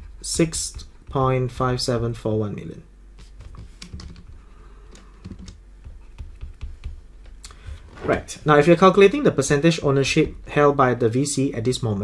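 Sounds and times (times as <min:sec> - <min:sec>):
stylus tapping on a tablet: 0:05.2 - 0:07.8.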